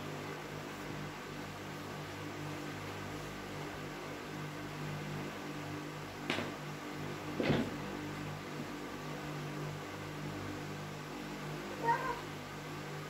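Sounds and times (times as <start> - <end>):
steady low hum: 0.0 - 13.0
child's high vocal call: 11.8 - 12.3.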